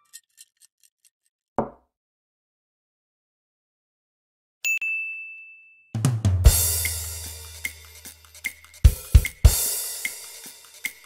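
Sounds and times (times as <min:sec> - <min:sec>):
bell-like ding: 0:04.7 - 0:06.0
drum-kit music: 0:06.0 - 0:11.0.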